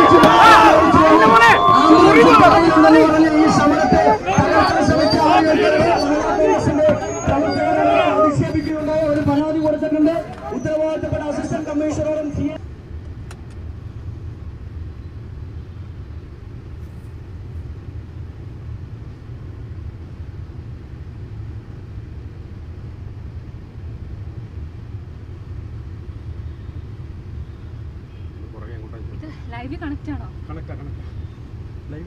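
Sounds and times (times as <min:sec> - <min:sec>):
car and motorbike engines: 0:00.0 - 0:32.0
city traffic rumble: 0:00.0 - 0:32.0.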